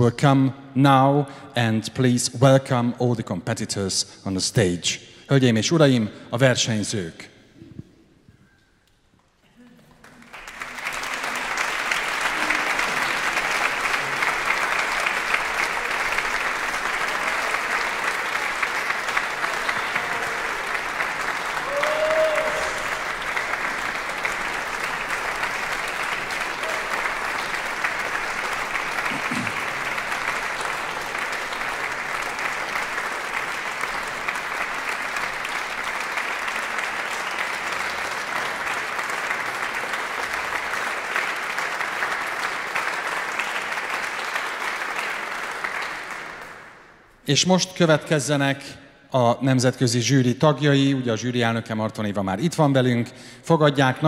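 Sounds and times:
audience applauding: 9.7s - 47.0s.

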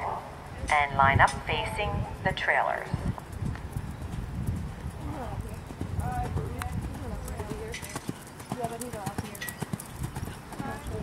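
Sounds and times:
horse hoofbeats on sand: 3.2s - 11.0s.

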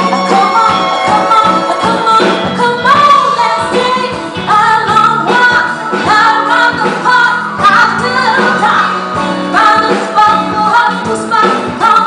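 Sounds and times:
live band playing: 0.0s - 12.0s
woman singing: 0.0s - 12.0s.

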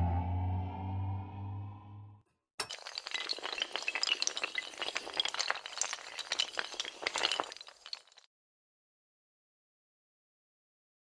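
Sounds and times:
dominoes toppling: 2.6s - 8.2s.

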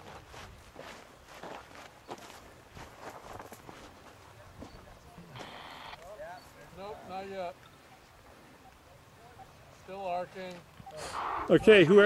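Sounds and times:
footsteps on dirt and gravel: 0.0s - 6.2s.

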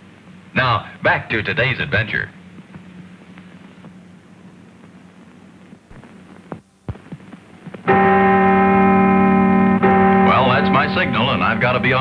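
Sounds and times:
faint hum: 0.0s - 12.0s
buzzer-like signal tone: 7.9s - 12.0s.

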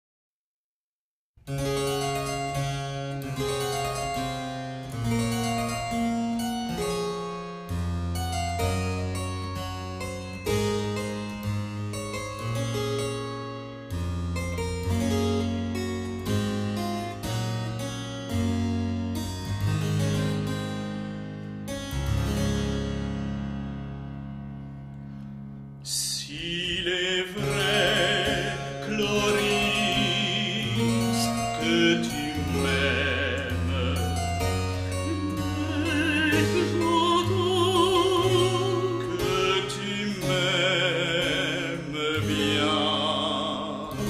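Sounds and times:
harpsichord playing: 1.5s - 25.6s, 26.4s - 44.0s.

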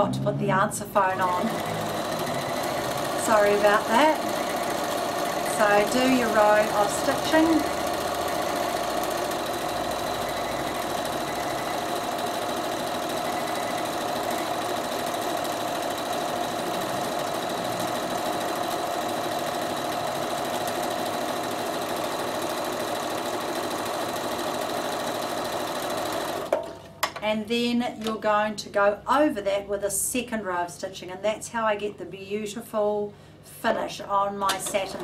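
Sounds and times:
sewing machine running: 1.0s - 26.6s, 34.6s - 35.0s.

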